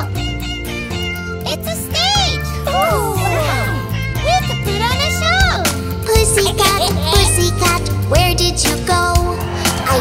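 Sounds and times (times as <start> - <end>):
children's song instrumental music: 0.0 - 10.0
cartoon cat meows: 1.2 - 3.9.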